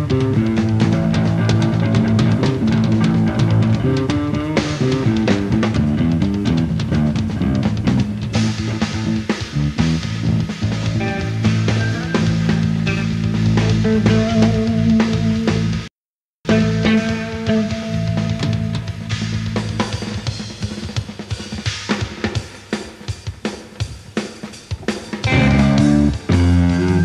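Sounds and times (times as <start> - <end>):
electric guitar: 0.0 - 15.9, 16.5 - 20.6, 24.9 - 27.0
bass guitar: 0.0 - 20.8, 25.2 - 27.0
drum kit: 0.0 - 27.0.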